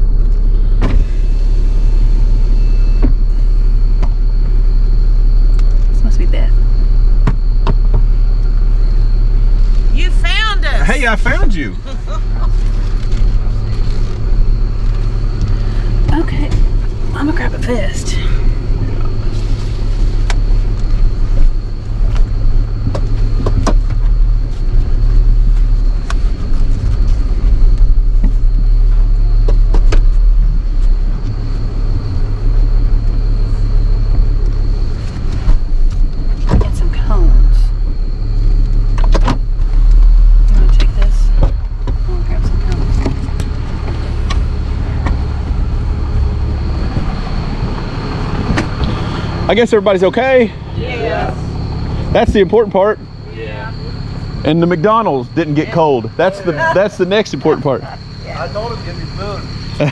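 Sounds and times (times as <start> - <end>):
truck engine rumbling: 0.0 - 59.9.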